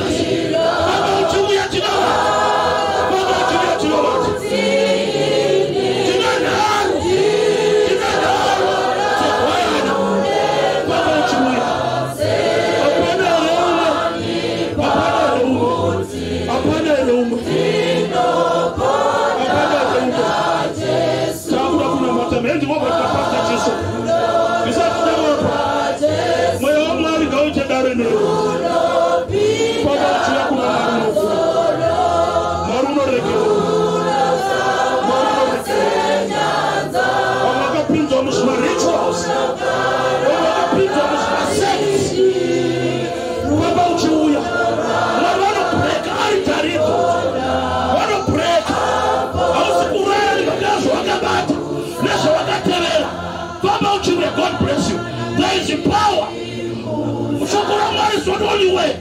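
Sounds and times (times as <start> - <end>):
group of voices singing: 0.0 - 59.0.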